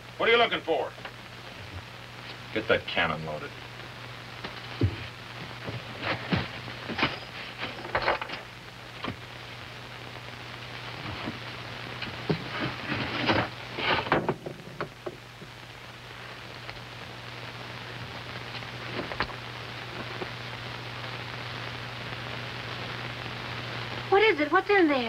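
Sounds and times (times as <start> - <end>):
steady hiss: 0.0 - 25.0.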